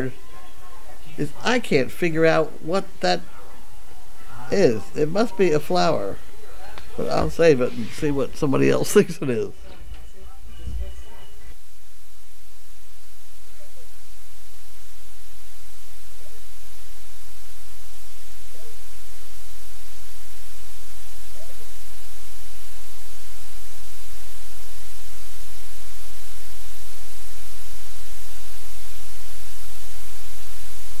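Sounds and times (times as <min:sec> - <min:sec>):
low electrical hum: 0:00.0 - 0:31.0
static hiss: 0:00.0 - 0:31.0.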